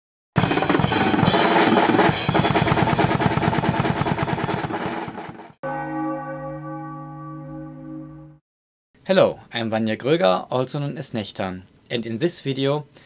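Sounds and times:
metal drum kit playing fast: 0.4 - 5.6
low bell-like tone: 5.6 - 8.4.

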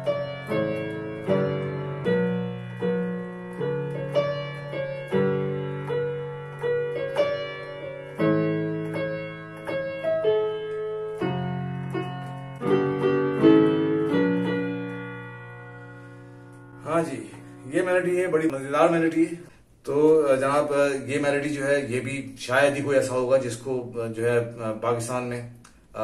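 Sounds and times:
digital piano slow melody: 0.0 - 26.0.

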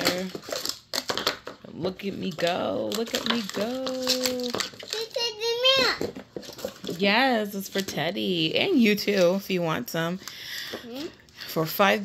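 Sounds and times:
young child calling out: 5.0 - 6.0.

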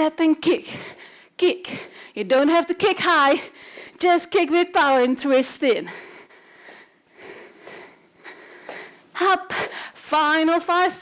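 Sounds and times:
woman breathing through nose: 5.9 - 10.0.

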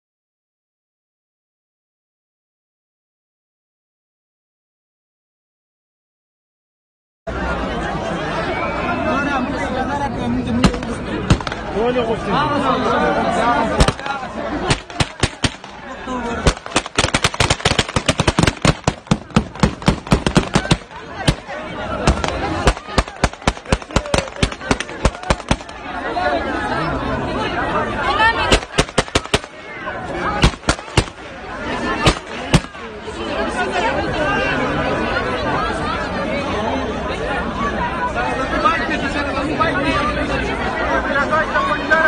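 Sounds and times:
crowd shouting: 7.3 - 42.0
rapid gunfire: 10.6 - 11.7, 13.8 - 15.8, 16.4 - 25.8, 28.5 - 29.6, 30.4 - 31.4, 32.0 - 32.8
gunshots: 10.6 - 11.8, 13.8 - 15.8, 16.4 - 25.8, 28.5 - 29.6, 30.4 - 31.4, 32.0 - 32.9.

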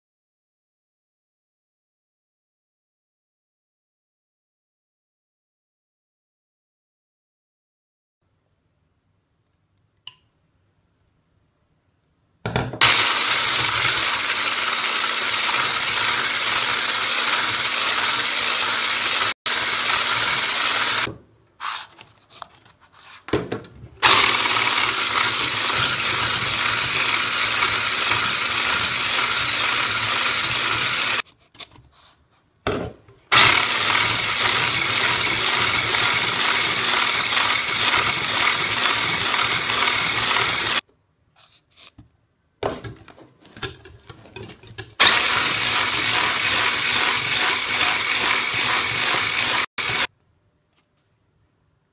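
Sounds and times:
electric hand mixer whipping: 12.8 - 21.1, 24.0 - 31.2, 33.3 - 40.8, 45.0 - 50.1.

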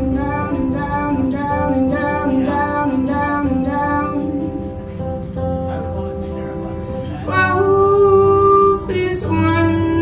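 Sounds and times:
woman singing: 0.0 - 4.6, 7.3 - 10.0
acoustic guitar: 0.0 - 10.0.

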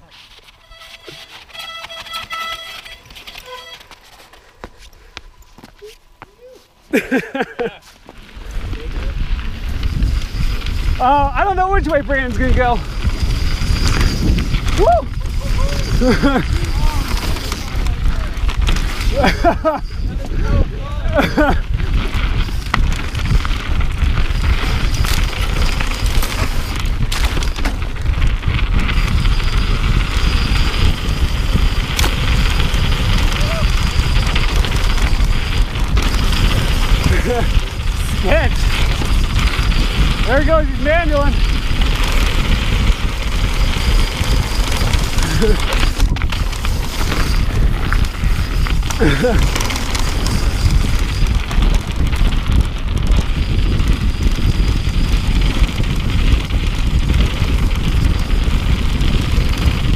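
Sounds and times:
bike tyres rumbling and rattling: 0.0 - 59.9
wind buffeting microphone: 7.6 - 59.9.

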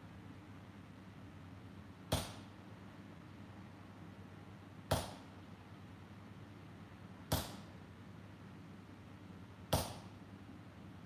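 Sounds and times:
hammer striking steel on anvil: 2.1 - 2.5, 4.9 - 5.2, 7.3 - 7.7, 9.7 - 10.1.

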